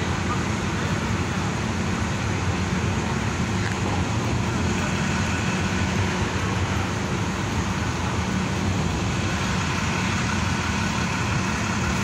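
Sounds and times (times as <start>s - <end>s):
bus diesel engine running: 0.0s - 12.0s.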